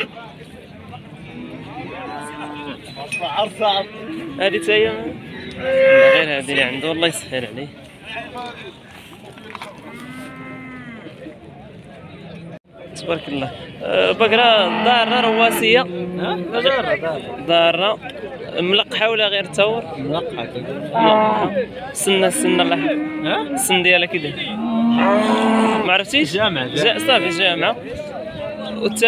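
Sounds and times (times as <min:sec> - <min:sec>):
cow mooing: 0:03.8 - 0:06.3, 0:09.9 - 0:11.1, 0:14.5 - 0:16.8, 0:20.9 - 0:21.6, 0:22.2 - 0:23.7, 0:24.4 - 0:25.9, 0:26.8 - 0:27.6.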